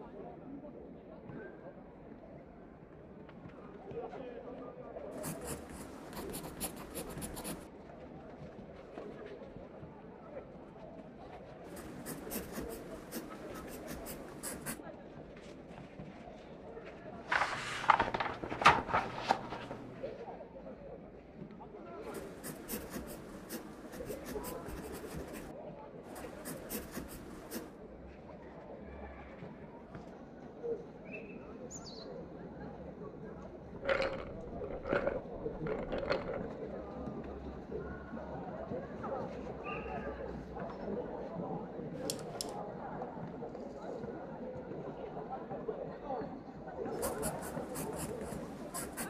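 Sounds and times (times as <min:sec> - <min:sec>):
murmur of distant voices: 0:00.0 - 0:49.0
pencil writing on paper: 0:05.2 - 0:07.7, 0:11.7 - 0:14.8, 0:22.1 - 0:25.5, 0:26.1 - 0:27.7, 0:46.9 - 0:49.0
paper rustling: 0:17.3 - 0:20.0.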